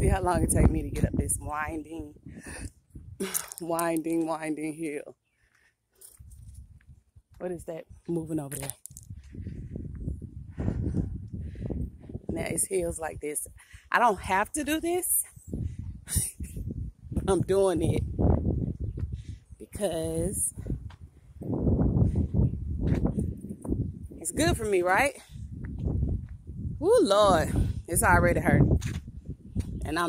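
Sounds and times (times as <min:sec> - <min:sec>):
microphone wind rumble: 0:00.0 - 0:04.0, 0:06.2 - 0:30.0
person breathing: 0:09.2 - 0:12.1
footsteps on asphalt: 0:18.4 - 0:19.2, 0:20.7 - 0:21.5, 0:22.8 - 0:23.9, 0:25.5 - 0:26.5, 0:28.8 - 0:29.8.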